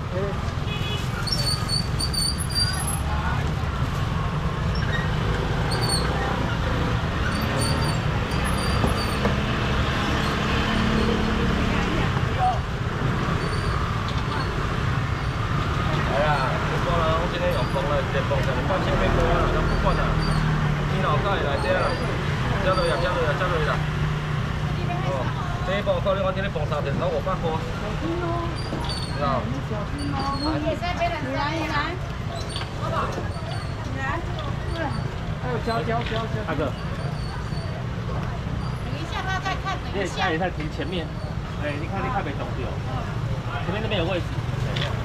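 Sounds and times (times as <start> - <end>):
chatter of many voices: 10.0 - 45.0.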